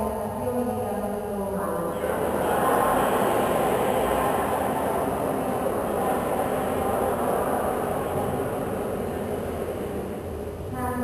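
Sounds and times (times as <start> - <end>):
congregation reciting a prayer: 1.6 - 11.0.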